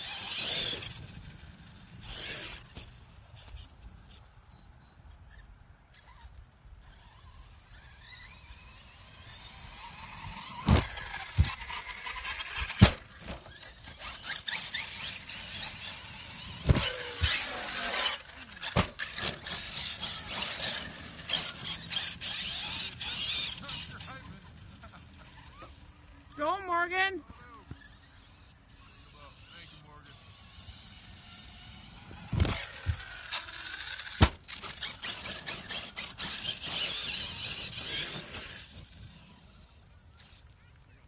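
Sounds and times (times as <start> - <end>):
toy truck motor whining: 0.0 - 4.2, 5.3 - 26.6, 27.5 - 41.0
toy car landing thud: 10.4 - 13.5, 16.5 - 19.5, 31.6 - 38.1.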